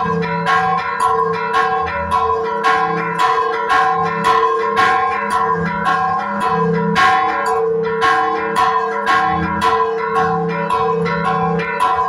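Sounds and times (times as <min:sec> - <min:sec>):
church bells ringing: 0:00.0 - 0:12.0.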